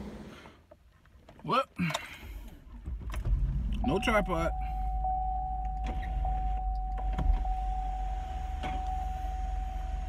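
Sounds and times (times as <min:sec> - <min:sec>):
car engine rumble inside cabin: 0:02.4 - 0:10.0
power window motor whine: 0:05.6 - 0:10.0.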